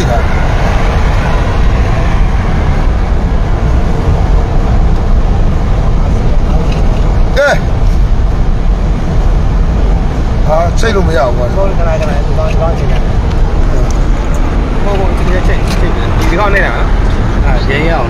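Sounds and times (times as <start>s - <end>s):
vehicle cabin rumble: 0.0s - 18.0s.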